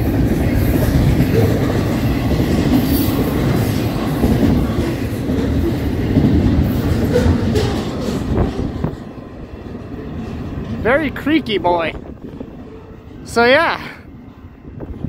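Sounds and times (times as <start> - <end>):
train wheels rumbling on rail: 0.0 - 15.0.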